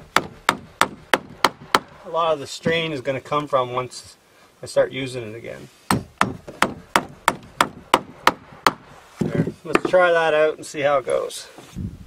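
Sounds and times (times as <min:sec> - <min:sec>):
hammer driving a nail into wood: 0:00.0 - 0:02.0, 0:05.9 - 0:10.0.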